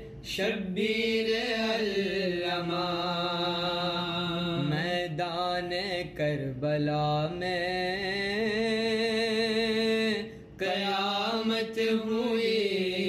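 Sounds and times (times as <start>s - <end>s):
man chanting: 0.2s - 13.0s.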